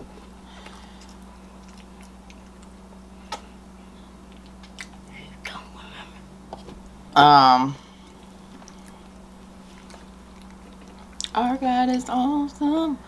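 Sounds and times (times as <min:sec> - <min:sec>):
steady low hum: 0:00.0 - 0:13.0
chewing and mouth sounds: 0:00.5 - 0:03.5, 0:04.2 - 0:05.9, 0:08.0 - 0:12.0.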